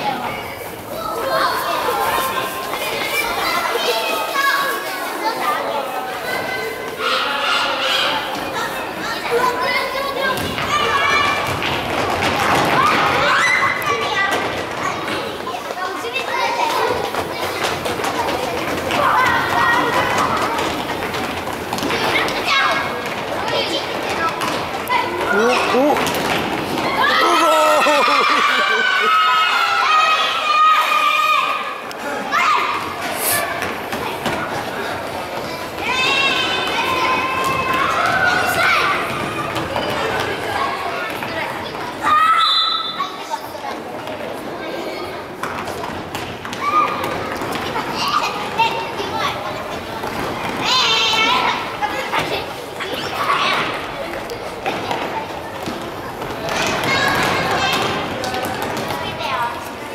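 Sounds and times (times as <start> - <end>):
children shouting: 0.0 - 20.7, 26.7 - 43.5, 46.5 - 54.1, 56.4 - 59.6.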